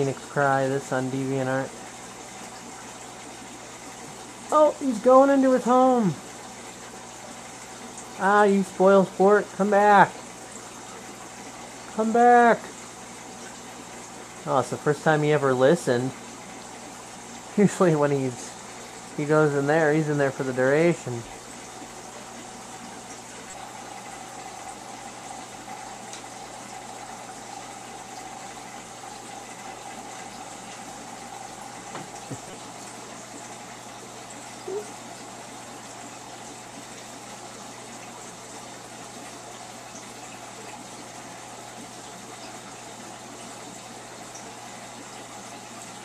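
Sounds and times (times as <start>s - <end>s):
aquarium filter water rushing: 0.0s - 46.0s
constant hum: 0.0s - 46.0s.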